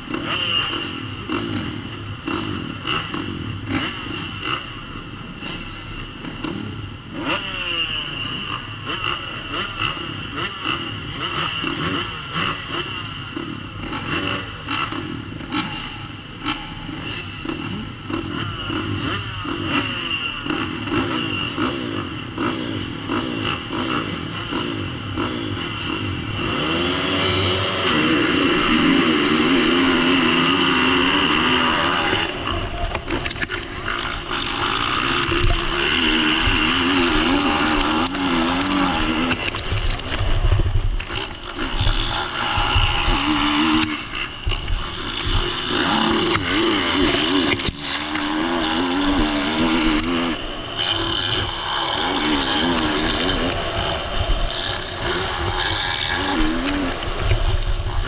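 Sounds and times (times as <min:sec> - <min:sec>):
motocross bikes revving: 0:00.0 - 0:58.0.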